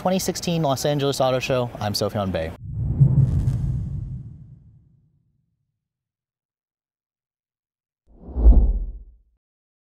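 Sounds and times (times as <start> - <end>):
deep bass whoosh: 2.6 - 4.8, 8.2 - 9.2.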